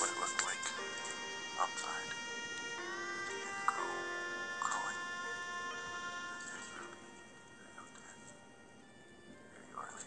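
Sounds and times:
bagpipe music: 0.0 - 10.0.

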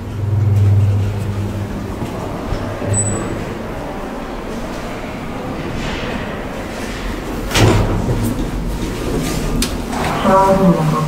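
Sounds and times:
elevator doors sliding: 0.0 - 11.0.

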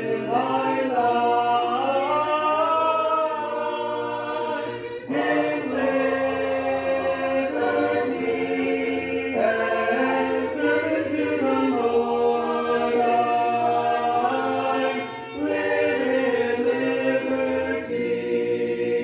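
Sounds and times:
congregation singing a hymn: 0.0 - 19.0.

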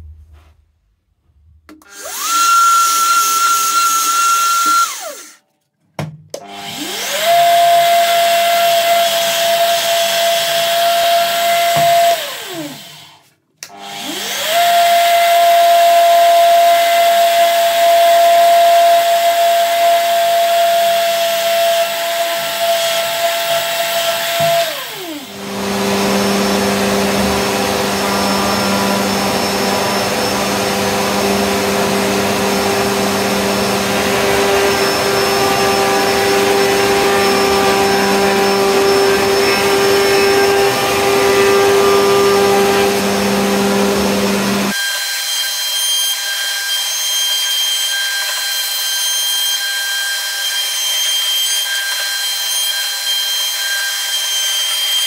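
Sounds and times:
drill press motor whine: 1.9 - 5.4, 17.2 - 44.8
rough motor noise: 25.0 - 44.7.

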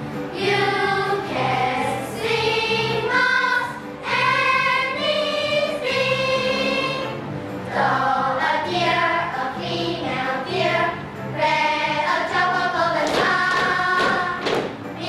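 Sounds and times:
musical accompaniment with bass line: 0.0 - 15.0
children's choir singing: 0.3 - 15.0.

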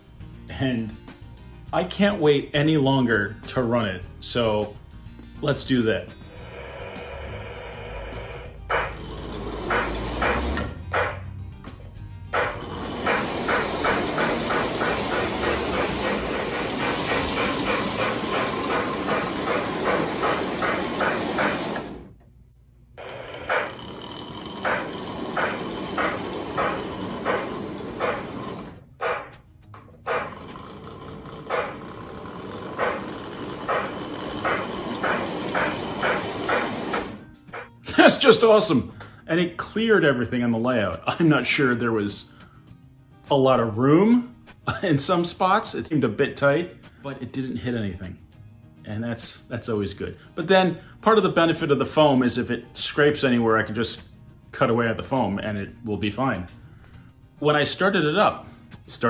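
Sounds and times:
model train motor rumbling: 6.3 - 10.8, 12.4 - 22.1, 23.0 - 29.2, 30.1 - 37.2
electronic steam chuffs: 6.3 - 11.1, 12.4 - 22.1, 23.0 - 29.3, 30.1 - 37.7.

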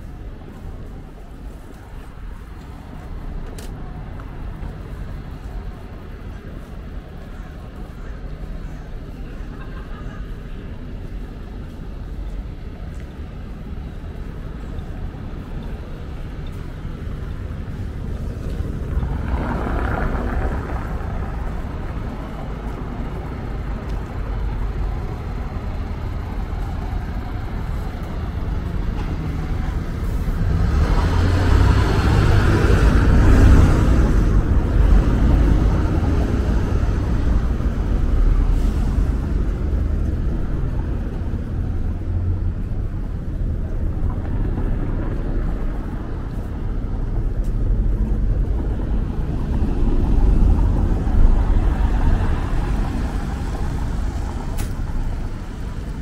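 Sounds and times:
bus driving on cobblestones: 0.0 - 56.0
cars driving past: 8.5 - 56.0.

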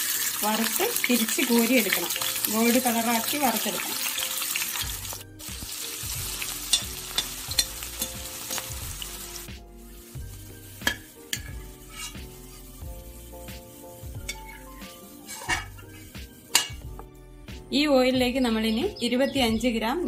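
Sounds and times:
onions sizzling in hot oil: 0.0 - 17.0
metal spoon clinking on pan: 6.7 - 8.6, 10.8 - 12.2, 14.3 - 14.6, 16.5 - 16.8.

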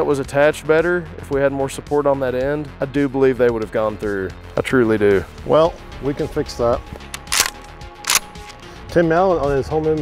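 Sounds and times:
shotgun slide racking clacks: 7.0 - 8.6.

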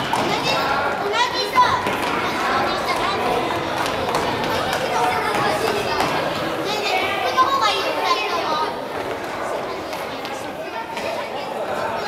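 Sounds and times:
children shouting and calling out: 0.0 - 12.0
high child's voice: 4.6 - 8.8.

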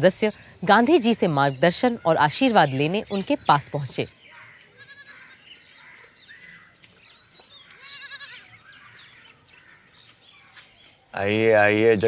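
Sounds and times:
birds chirping: 0.0 - 12.0
goat bleating: 4.8 - 5.4, 7.8 - 8.6.

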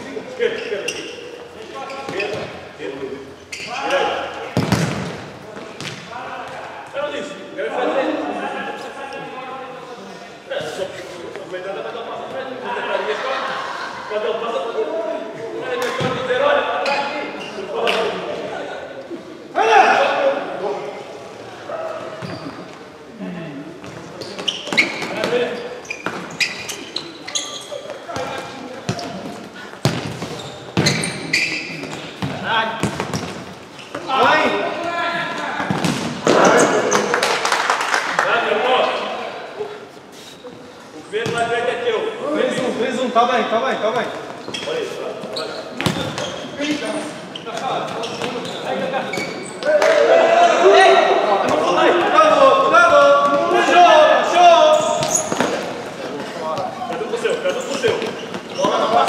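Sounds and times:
players shouting: 49.5 - 55.5.

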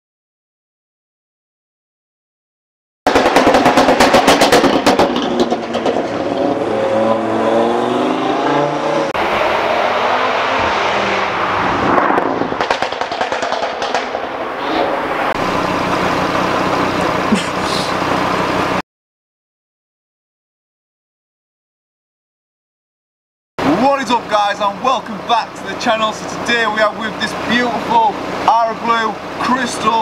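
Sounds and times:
exhaust pops and crackles: 3.1 - 6.6, 11.8 - 14.5
car engine revving: 3.1 - 18.8.

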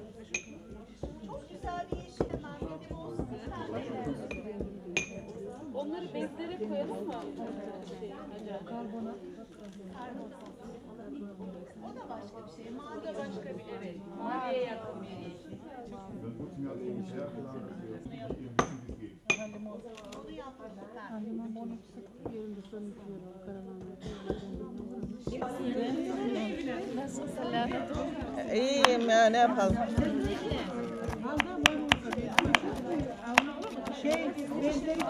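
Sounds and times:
knife chopping on wooden board: 29.7 - 34.2.

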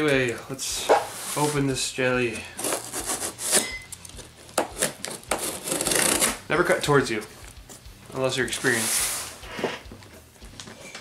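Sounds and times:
utility knife cutting packing tape: 4.5 - 6.4.

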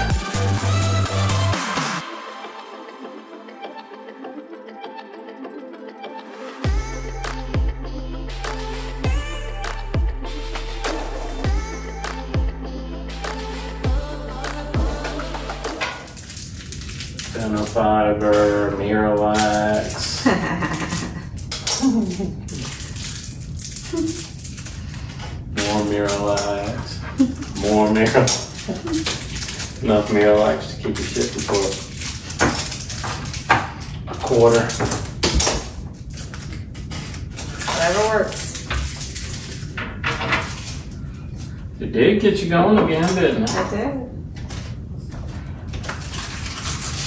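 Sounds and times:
people talking and laughing: 28.6 - 29.2.

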